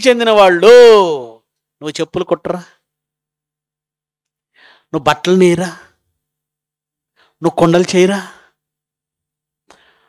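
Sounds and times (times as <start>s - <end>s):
man speaking into microphone: 0.0s - 2.8s, 4.9s - 6.0s, 7.4s - 8.5s
faint intake of breath: 4.5s - 4.9s, 9.7s - 10.0s.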